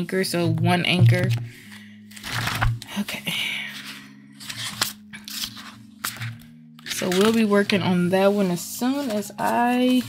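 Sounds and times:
paper pages turning: 1.3 - 3.0, 3.7 - 10.0.

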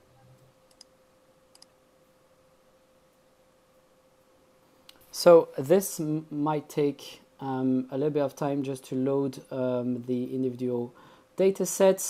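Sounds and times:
thin steady hum: 0.0 - 12.0.

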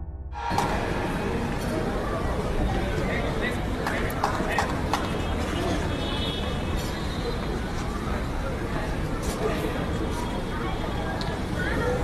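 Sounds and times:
murmur of spectators: 0.4 - 12.0.

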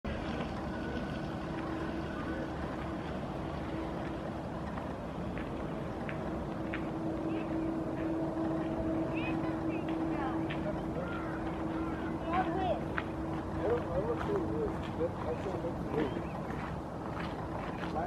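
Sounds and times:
engine droning: 0.0 - 18.0
faint high calls: 6.9 - 14.8.

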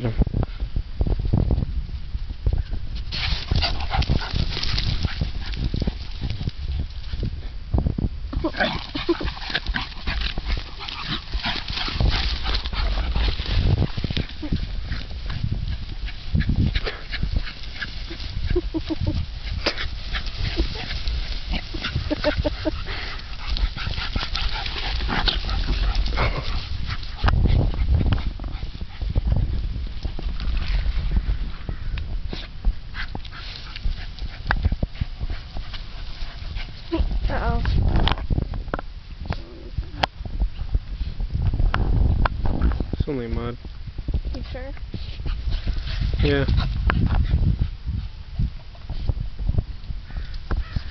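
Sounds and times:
grass rustling and crackling: 0.0 - 50.9
dog vocal noises: 8.4 - 29.1.

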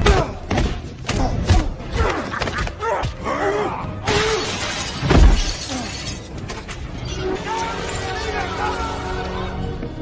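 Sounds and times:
glass shattering: 4.1 - 8.2.

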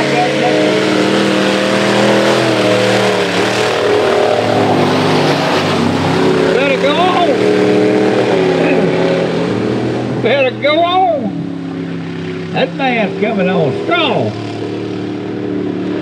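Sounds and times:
truck engines revving high: 0.0 - 16.0.

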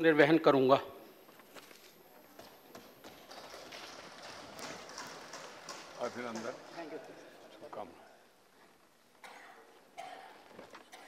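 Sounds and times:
people thumping desks: 2.2 - 7.2.

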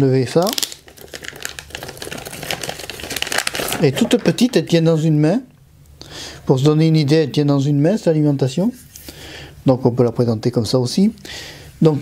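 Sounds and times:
plastic bag crinkling: 0.3 - 4.8.

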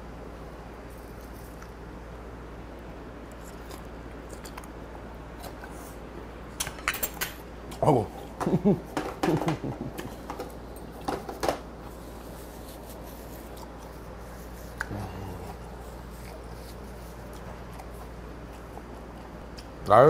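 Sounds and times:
low room hum: 0.0 - 20.0
man laughing: 8.3 - 10.2.

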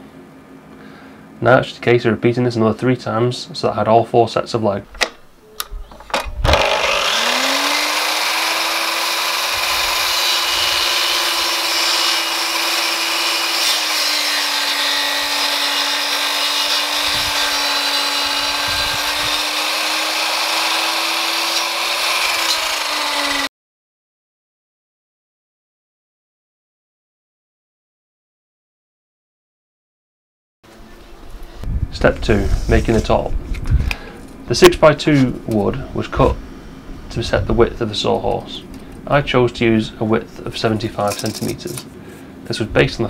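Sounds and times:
mitre saw cutting timber: 6.4 - 23.5.

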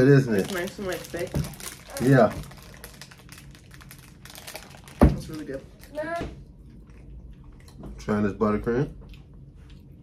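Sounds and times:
plastic wrapper crinkling: 0.0 - 6.2.

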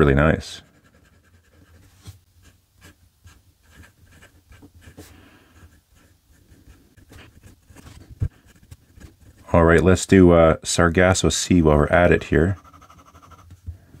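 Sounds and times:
fountain pen scratching on paper: 0.6 - 9.5, 12.5 - 13.6.

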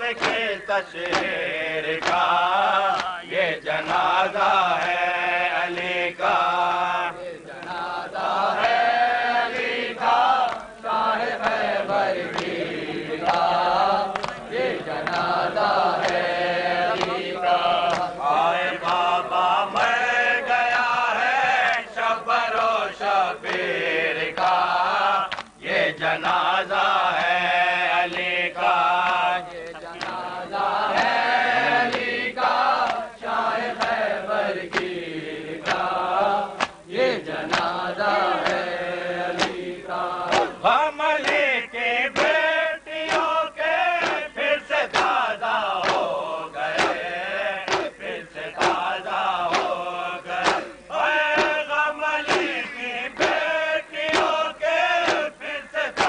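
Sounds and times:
men chanting a lament: 0.0 - 56.0
chest-beating slaps: 0.2 - 1.4, 2.0 - 2.3, 12.3 - 12.6, 14.1 - 15.4, 16.0 - 16.3, 16.9 - 18.2, 34.7 - 35.0, 36.6 - 36.9, 37.5 - 37.8, 39.3 - 39.6, 40.3 - 41.5, 42.2 - 42.4, 43.1 - 43.4, 44.0 - 44.3, 44.9 - 45.2, 45.8 - 53.4, 54.0 - 54.4, 55.0 - 55.3.

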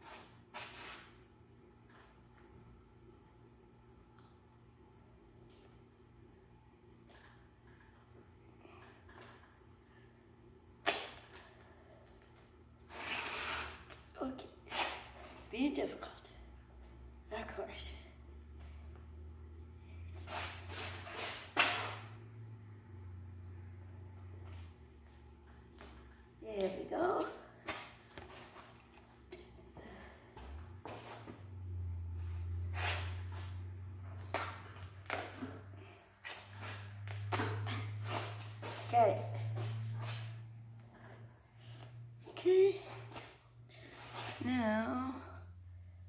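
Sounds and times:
duct tape pulled off roll: 12.9 - 14.0, 20.3 - 22.1.

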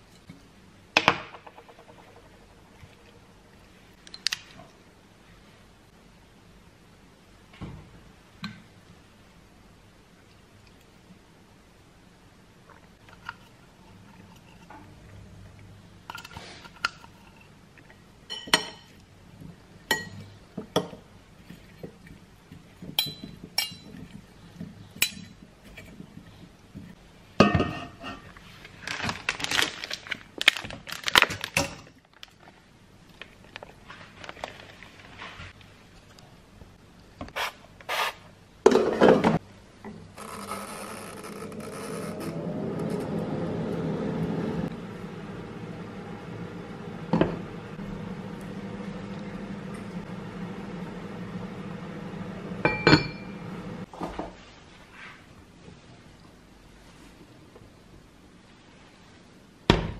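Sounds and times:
metal spoons clinking on pan: 18.3 - 18.9, 22.9 - 24.0, 25.0 - 25.4
steady low hum: 41.5 - 53.9.

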